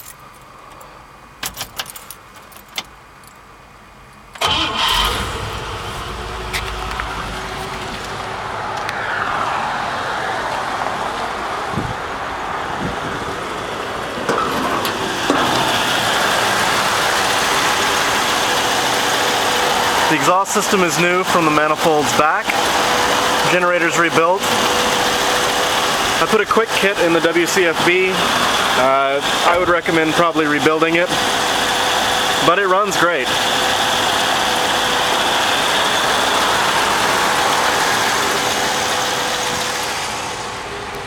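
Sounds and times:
car engine starting and idling: 4.1s - 41.0s
ignition clicks: 4.2s - 7.2s.

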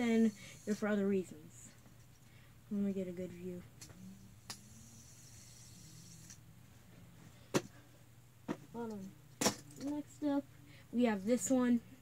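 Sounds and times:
fidget spinner whirring: 0.0s - 2.3s, 3.0s - 6.5s.

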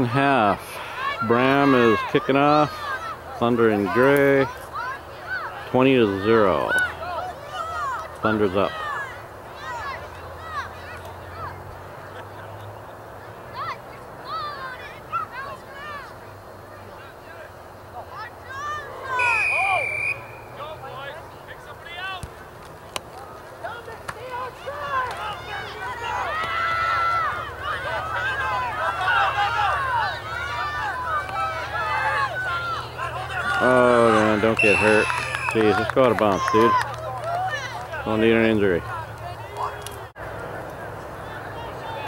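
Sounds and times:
crowd and players shouting: 0.0s - 12.6s, 13.3s - 22.3s, 23.1s - 40.2s
referee's whistle: 19.1s - 20.7s, 34.6s - 35.8s.

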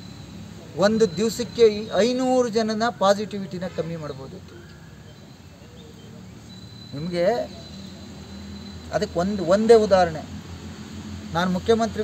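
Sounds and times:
man speaking: 0.7s - 4.7s, 6.9s - 7.7s, 8.9s - 10.4s, 11.3s - 12.0s.

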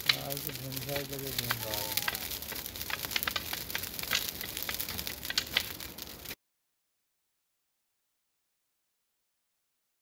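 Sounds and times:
fire crackling and popping: 0.0s - 6.4s.

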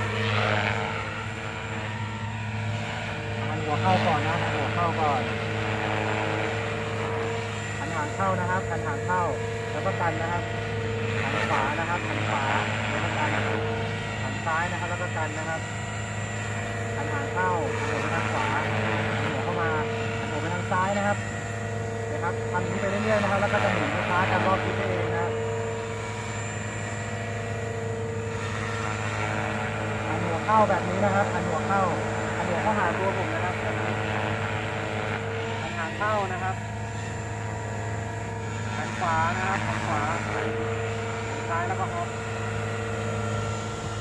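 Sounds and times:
model helicopter rotor whine: 0.0s - 44.0s.

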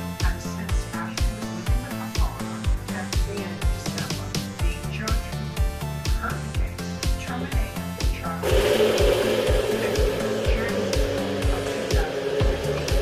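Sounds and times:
stepping bass line: 8.4s - 13.0s.

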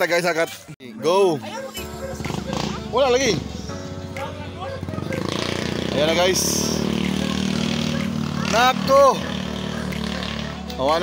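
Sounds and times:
background music with held tones: 0.8s - 11.0s.

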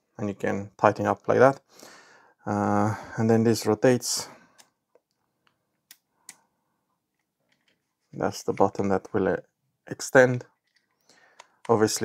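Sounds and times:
faint plastic clamp clicks: 10.3s - 11.9s.

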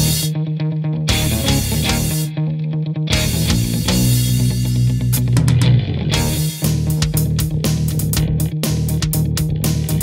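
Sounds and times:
electric bass line: 0.0s - 10.0s
electric guitar: 0.0s - 10.0s.

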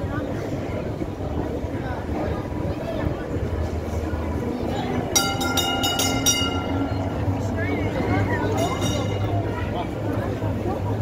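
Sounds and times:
crowd voices: 0.0s - 11.0s
tram rumbling on rails: 0.0s - 11.0s
tram bell ringing: 5.0s - 9.7s.

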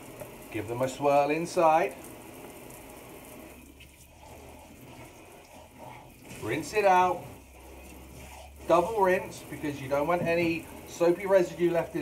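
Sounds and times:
cup swirled in sink water: 3.4s - 12.0s.

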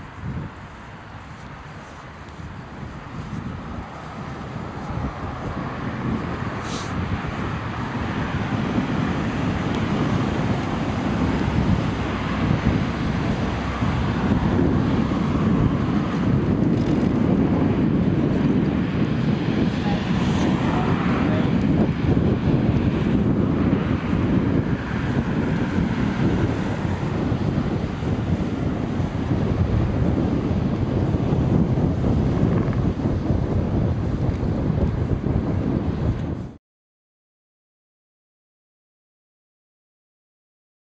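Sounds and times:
cars passing: 0.0s - 35.2s
wind noise on microphone: 0.0s - 36.6s.

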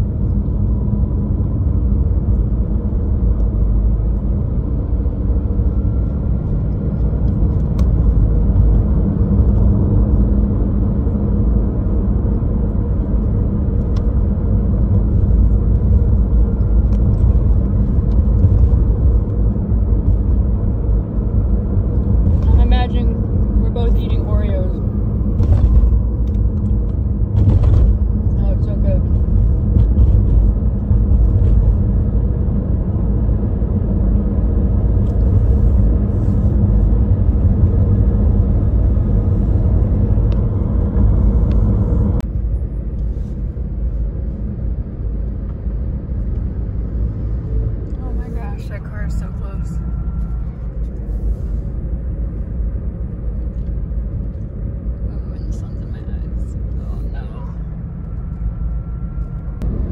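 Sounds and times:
car engine and road rumble: 0.0s - 59.9s.

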